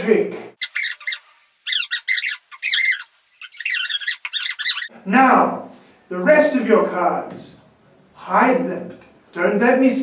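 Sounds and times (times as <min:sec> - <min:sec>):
fast-forwarded squeaky voices: 0:00.6 - 0:04.9.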